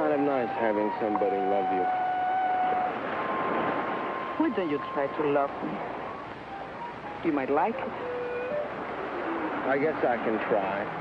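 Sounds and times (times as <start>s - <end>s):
high held tone: 0.1s - 10.0s.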